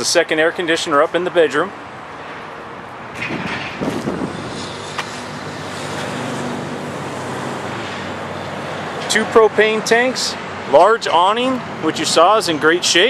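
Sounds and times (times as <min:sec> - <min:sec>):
traffic noise: 0:00.0 - 0:13.0
vehicle engine humming: 0:01.8 - 0:12.7.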